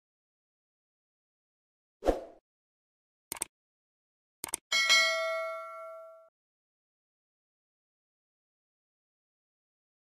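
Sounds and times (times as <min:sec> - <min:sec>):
bright metallic bell ding: 0:04.7 - 0:06.3.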